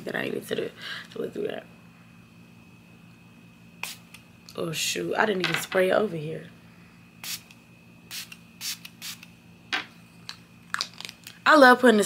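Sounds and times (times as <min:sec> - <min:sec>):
spray bottle hissing puffs: 0:07.2 - 0:07.5, 0:08.1 - 0:09.3.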